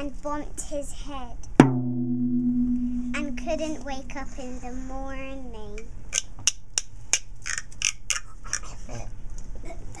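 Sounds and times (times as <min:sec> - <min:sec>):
percussion shaker rattling: 0:06.1 - 0:08.7.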